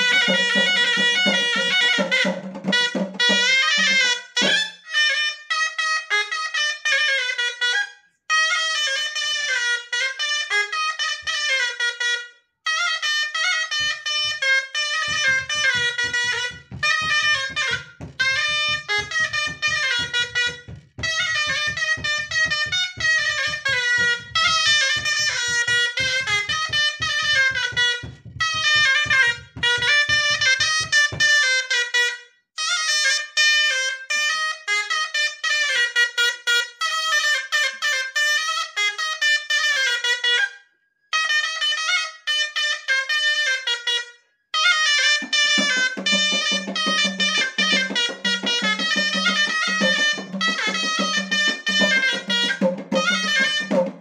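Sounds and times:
double-reed shawm melody: 0.0s - 4.6s, 45.2s - 54.0s.

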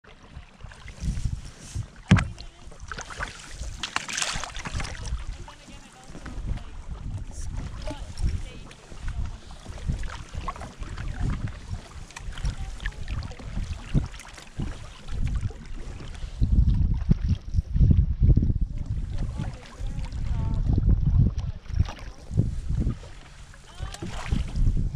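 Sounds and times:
water splashing against hull: 0.0s - 24.9s
canoe paddle strokes: 0.1s - 24.9s
wind buffeting microphone: 0.3s - 24.9s.

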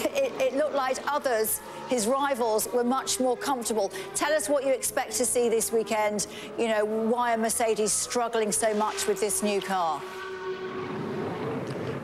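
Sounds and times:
racing car engine high note: 0.3s - 12.0s.

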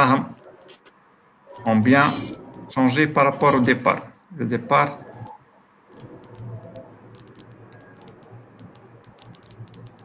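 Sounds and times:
typing on computer keyboard: 5.2s - 10.0s.

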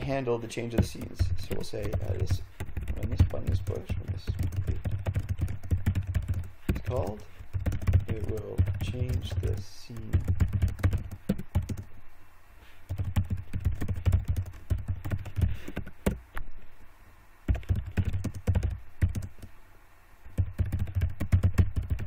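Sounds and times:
keyboard typing: 0.7s - 11.9s, 12.9s - 16.2s, 17.5s - 19.5s, 20.3s - 22.0s.

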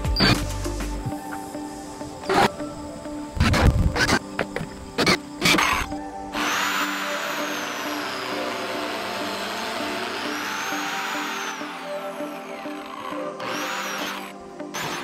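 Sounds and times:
background music: 0.0s - 15.0s
biscuit joiner cutting wood: 5.0s - 15.0s.

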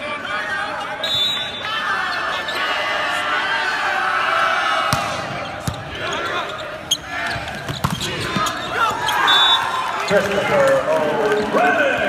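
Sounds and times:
crowd and player voices: 0.0s - 12.0s
volleyball being hit: 4.9s - 5.8s.

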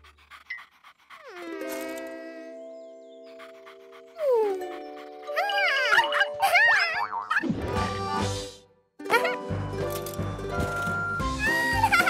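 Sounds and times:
squeaky cartoon creature cries: 5.4s - 7.4s.

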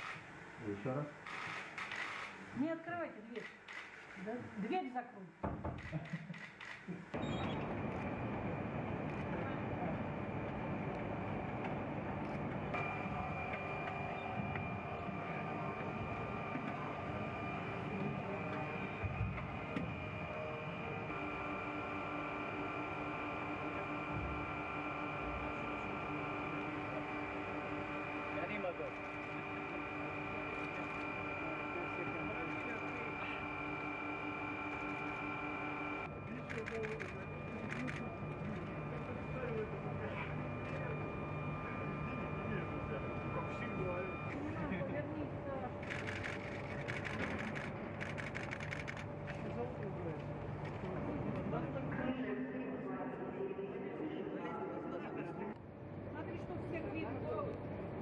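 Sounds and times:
mechanical hum of machinery: 0.0s - 58.0s
faint indistinct voices: 8.3s - 21.5s, 36.0s - 58.0s.

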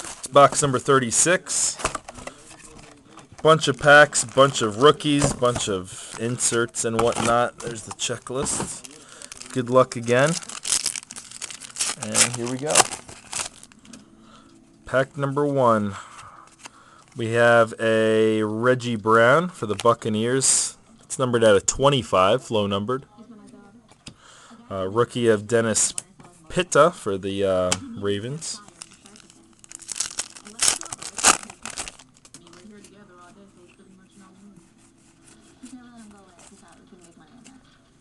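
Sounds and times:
faint rustling of cards: 0.0s - 14.1s, 28.3s - 37.7s
foil wrapper crinkling: 1.8s - 13.8s, 28.6s - 32.9s.

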